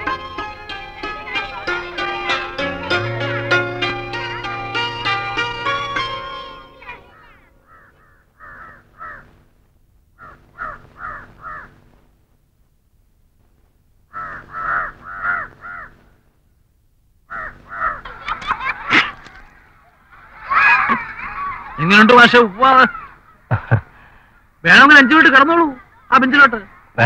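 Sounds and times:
crows cawing: 6.9 - 12.0, 14.1 - 16.2, 17.3 - 27.0.

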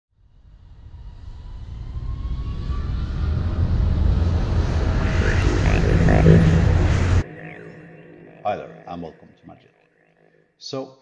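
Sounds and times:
low rumble riser: 0.4 - 9.7
faint rising tone: 0.8 - 10.5.

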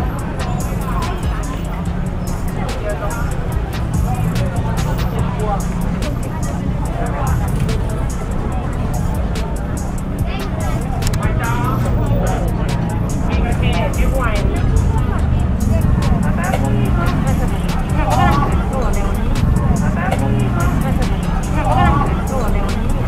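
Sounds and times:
background music: 0.0 - 23.0
people talking: 0.0 - 23.0
traffic: 0.0 - 23.0.

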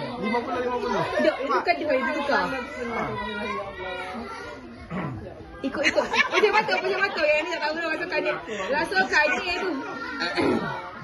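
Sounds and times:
chatter of adults and children: 0.0 - 11.0.

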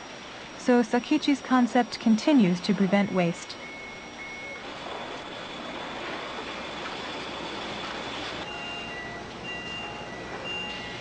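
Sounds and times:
short electronic beeps: 0.8 - 4.7, 8.4 - 11.0.

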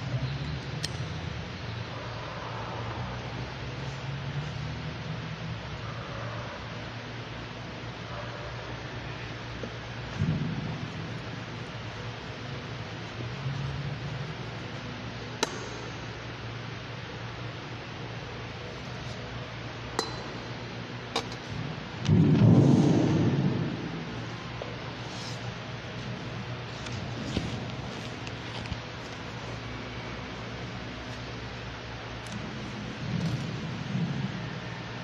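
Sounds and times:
steady background hiss: 0.0 - 35.0.

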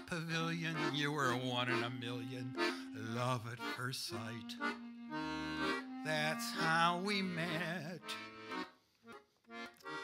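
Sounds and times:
piano accordion chords: 0.0 - 10.0.

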